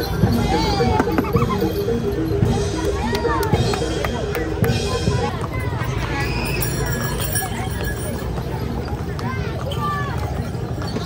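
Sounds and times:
horse-drawn cart passing: 0.0 - 4.2, 4.9 - 11.0
people's voices: 0.0 - 11.0
horse hooves clip-clopping on pavement: 2.8 - 11.0.

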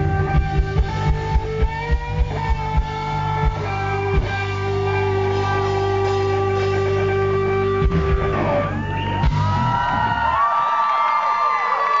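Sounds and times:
rock band held chord: 0.0 - 10.4
audience cheering and whistling: 8.2 - 12.0.

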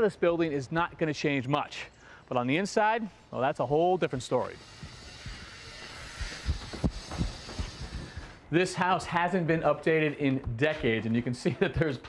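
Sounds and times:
steady hiss: 1.9 - 8.5.

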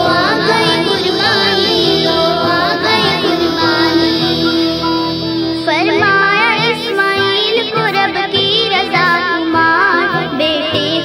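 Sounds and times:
girl singing devotional song: 0.0 - 4.9, 5.6 - 11.0.

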